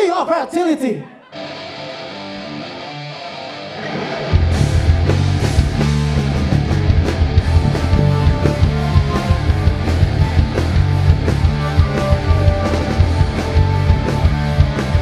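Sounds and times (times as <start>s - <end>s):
live rock band playing: 1.3s - 15.0s.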